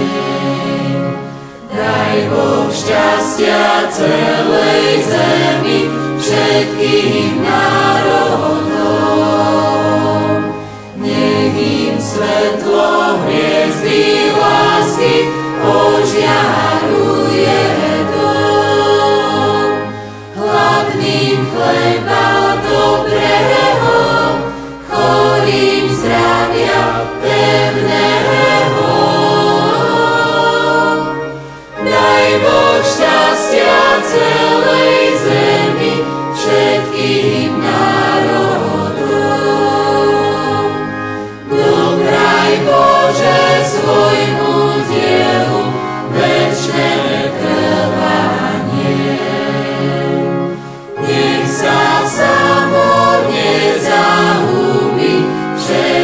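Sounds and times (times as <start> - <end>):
choir singing in harmony: 0.0 - 56.0.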